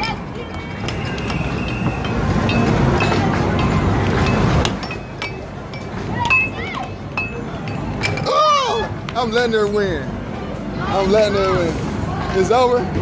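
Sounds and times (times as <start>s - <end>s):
arcade noise: 0.0s - 13.0s
air hockey puck clacking: 0.5s - 8.2s.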